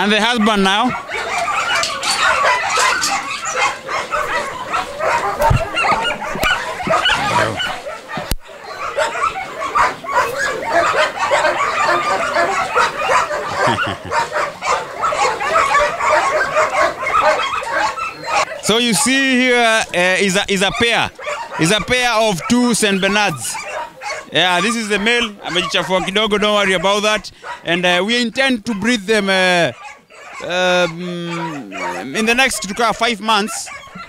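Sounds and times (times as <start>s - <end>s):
dogs barking: 0.0s - 34.0s.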